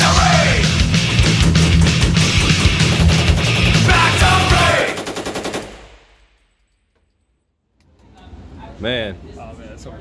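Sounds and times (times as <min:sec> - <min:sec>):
automatic gunfire burst: 0:03.0 - 0:06.0
gunfire echo: 0:04.7 - 0:06.5.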